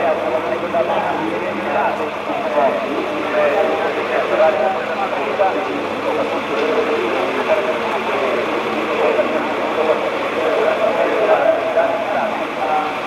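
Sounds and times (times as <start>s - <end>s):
race car engines droning: 0.0s - 13.0s
voices: 0.0s - 13.0s.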